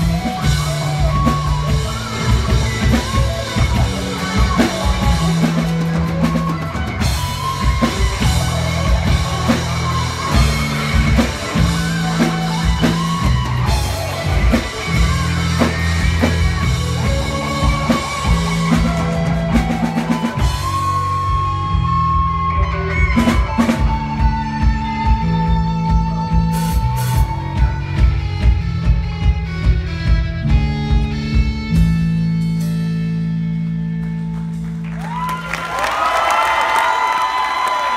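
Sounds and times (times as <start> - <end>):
drum kit: 0.0 - 37.9
electric guitar: 0.0 - 37.9
rock band playing: 0.0 - 37.9.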